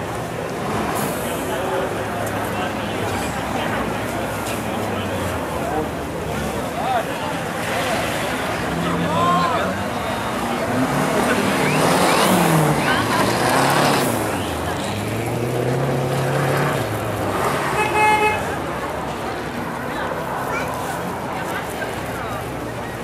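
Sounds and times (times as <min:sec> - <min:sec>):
car engine revving: 0:05.0 - 0:17.9
car horn toot: 0:17.8 - 0:18.5.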